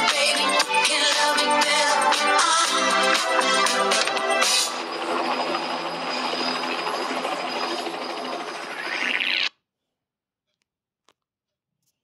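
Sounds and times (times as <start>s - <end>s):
thin high whine: 3.6s - 9.5s.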